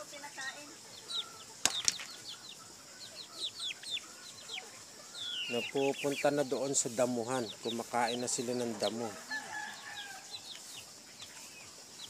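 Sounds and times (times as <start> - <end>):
chickens moving about: 0.2 - 12.0.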